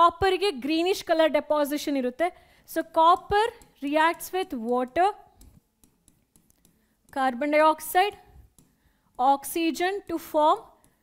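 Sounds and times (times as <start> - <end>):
person speaking: 0.0 - 11.0
stylus tapping on pen display: 3.0 - 7.2, 8.3 - 9.2, 10.6 - 11.0.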